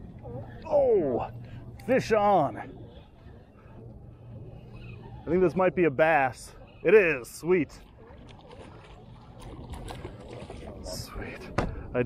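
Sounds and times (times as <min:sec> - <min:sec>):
water splashing and lapping: 0:00.0 - 0:11.6.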